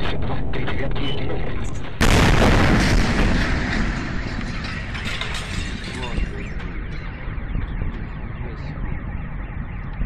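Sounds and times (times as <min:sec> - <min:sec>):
meteor air burst boom: 0:02.0 - 0:04.9.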